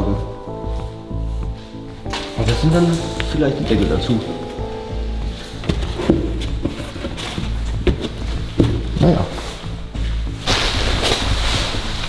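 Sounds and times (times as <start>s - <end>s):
foam box lids knocking: 5.5s - 9.1s.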